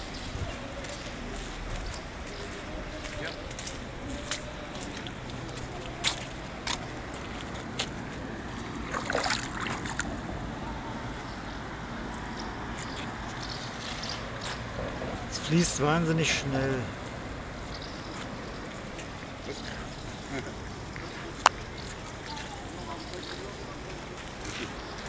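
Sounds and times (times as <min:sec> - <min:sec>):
floodwater rushing: 0:04.6 - 0:10.9
hand splashing in water: 0:08.9 - 0:10.1.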